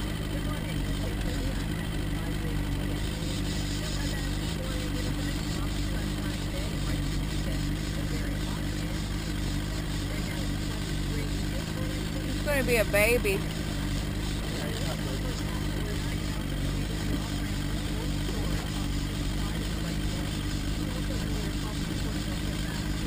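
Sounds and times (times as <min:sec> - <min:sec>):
outboard motor running: 0:00.0 - 0:23.0.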